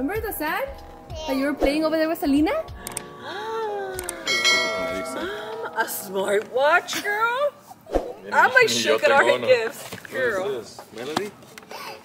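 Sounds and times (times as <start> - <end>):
bright bell ding: 4.3 - 6.5.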